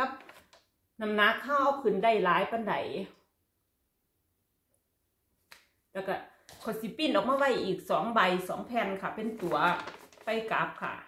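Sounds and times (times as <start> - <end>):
woman speaking: 0.0 - 0.3, 1.0 - 3.2, 6.0 - 11.0.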